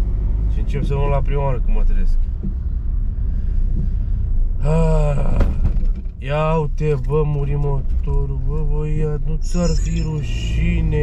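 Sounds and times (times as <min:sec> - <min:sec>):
car engine rumble: 0:00.0 - 0:11.0
road noise: 0:00.0 - 0:11.0
driver vocal sound: 0:04.6 - 0:05.5, 0:06.2 - 0:11.0.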